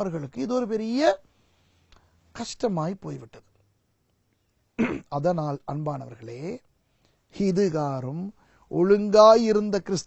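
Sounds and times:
man speaking: 0:00.0 - 0:01.2, 0:02.4 - 0:03.5, 0:04.8 - 0:06.6, 0:07.4 - 0:10.0.

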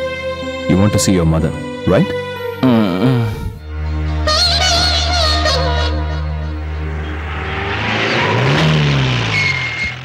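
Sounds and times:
low music drone: 0:00.0 - 0:10.0
road noise: 0:03.6 - 0:10.0
car engine: 0:05.2 - 0:10.0
brief high squeal: 0:09.1 - 0:10.0.

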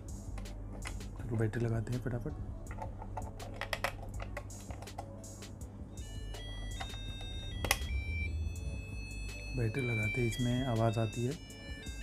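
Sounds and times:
background music: 0:00.0 - 0:12.0
batteries clicking into contacts: 0:02.6 - 0:05.2, 0:06.4 - 0:08.0
high electronic tones: 0:06.0 - 0:12.0.

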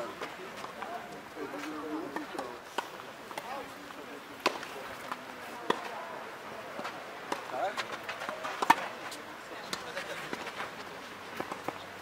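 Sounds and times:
tennis ball impacts: 0:01.6 - 0:03.7, 0:04.4 - 0:06.0, 0:06.8 - 0:09.0, 0:11.3 - 0:11.9.

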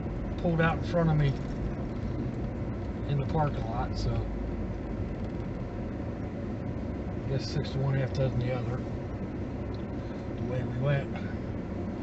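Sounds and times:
vehicle cabin road rumble: 0:00.0 - 0:12.0.

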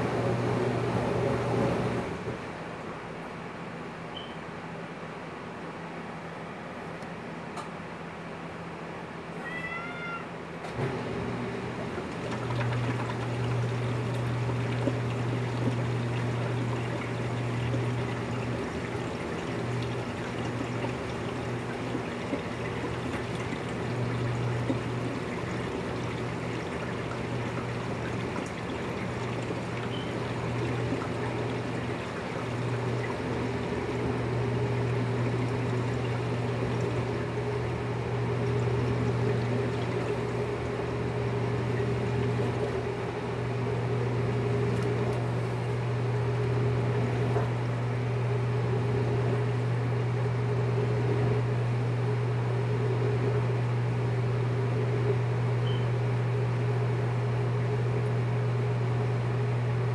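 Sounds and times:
low hum with noisy background: 0:00.0 - 0:59.9.

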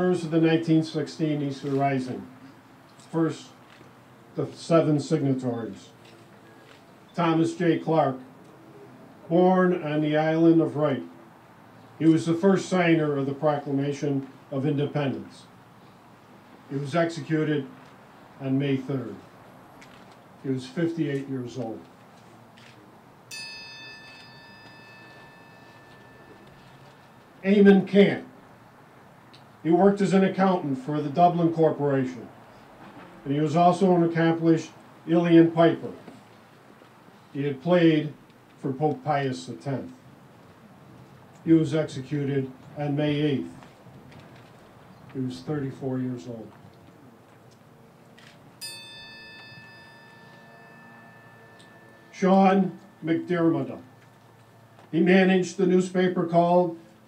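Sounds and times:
bell tolling: 0:23.3 - 0:27.4, 0:48.6 - 0:54.4
metal triangle ringing: 0:23.3 - 0:27.5, 0:48.6 - 0:54.4.

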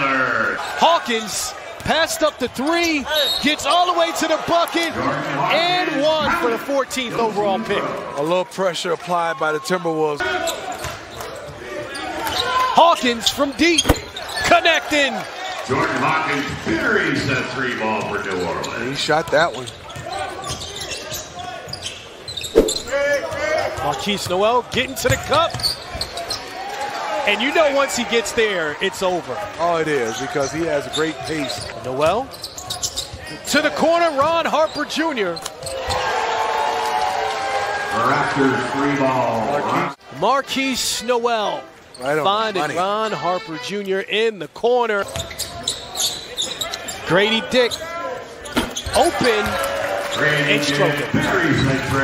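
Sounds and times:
arena crowd murmur: 0:00.0 - 0:08.8, 0:45.9 - 0:52.0
murmur of arena crowd: 0:00.0 - 0:52.0
sneaker squeaks: 0:03.1 - 0:03.6, 0:10.5 - 0:12.6, 0:13.5 - 0:14.5, 0:18.6 - 0:24.0, 0:25.5 - 0:26.4, 0:30.1 - 0:33.5, 0:45.0 - 0:49.2
basketball bouncing: 0:13.8 - 0:14.2, 0:22.6 - 0:23.0.

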